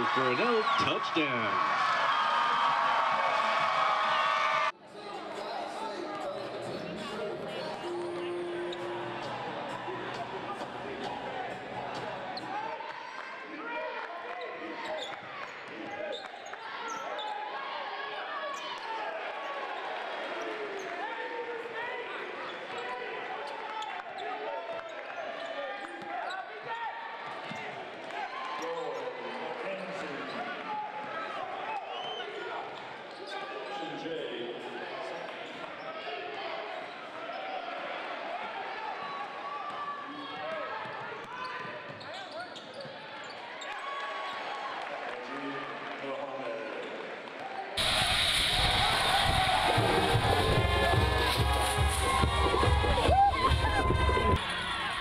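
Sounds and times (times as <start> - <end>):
crowd and players voices: 0.0 - 55.0.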